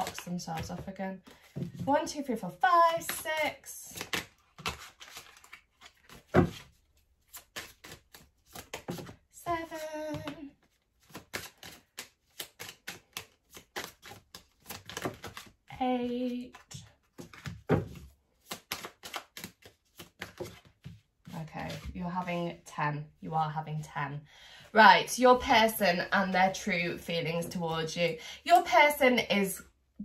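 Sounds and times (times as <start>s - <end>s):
cards clicking and snapping: 7.3s - 9.2s, 11.0s - 15.6s, 16.5s - 20.9s.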